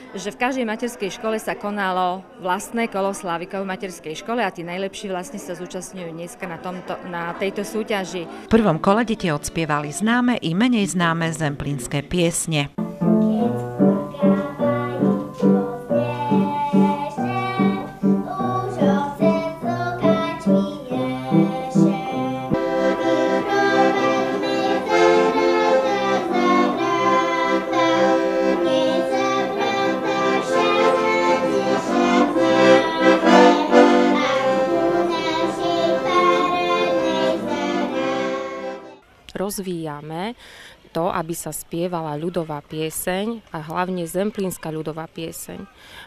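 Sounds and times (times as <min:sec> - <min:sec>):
instrumental accompaniment: 0:10.9 - 0:39.0
girl singing folk song: 0:12.8 - 0:38.5.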